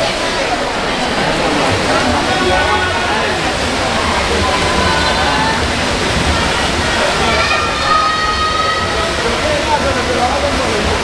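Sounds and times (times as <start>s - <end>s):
spectators shouting and cheering: 0.0s - 11.0s
swimmers splashing: 0.0s - 11.0s.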